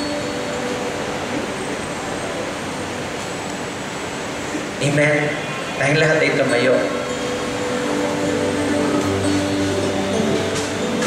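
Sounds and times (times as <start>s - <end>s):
keyboard sustained chords: 0.0s - 11.0s
room noise hiss: 0.0s - 11.0s.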